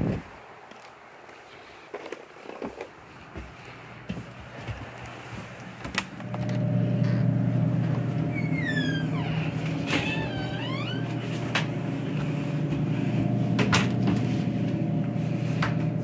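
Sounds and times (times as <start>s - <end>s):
vending machine humming: 5.7s - 16.0s
squeaky rising and falling glides: 8.0s - 11.4s.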